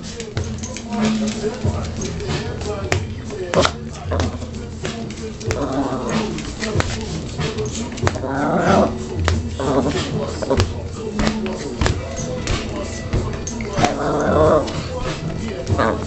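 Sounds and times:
song playing: 0:00.0 - 0:16.0.

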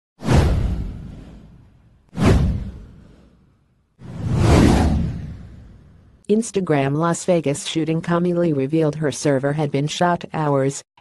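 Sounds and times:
whoosh sound effects: 0:02.2 - 0:06.2.

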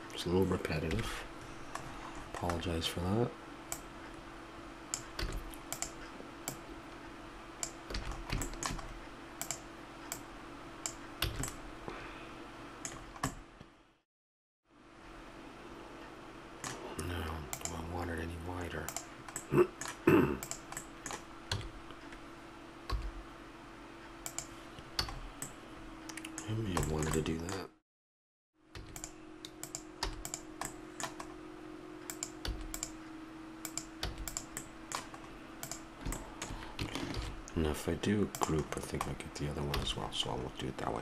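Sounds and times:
faint steady hum: 0:00.0 - 0:14.0, 0:14.7 - 0:27.8, 0:28.6 - 0:41.0
computer keyboard keys clicking: 0:05.0 - 0:06.6, 0:07.6 - 0:10.2, 0:10.8 - 0:11.6, 0:26.1 - 0:27.6, 0:28.8 - 0:31.3, 0:32.1 - 0:32.9, 0:33.7 - 0:37.3.

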